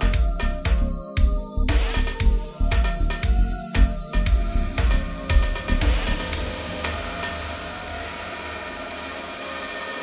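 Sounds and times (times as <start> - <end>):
electronic dance music synth wash: 0.0 - 10.0.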